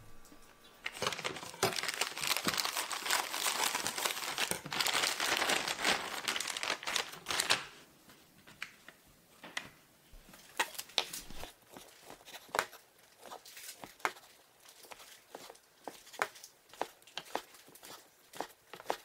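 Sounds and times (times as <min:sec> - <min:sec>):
plastic packaging crinkling: 0:00.8 - 0:07.8.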